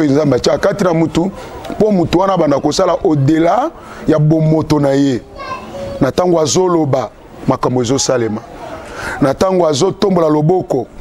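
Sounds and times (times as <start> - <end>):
man talking: 0.0 - 5.3, 6.0 - 8.5, 9.1 - 11.0.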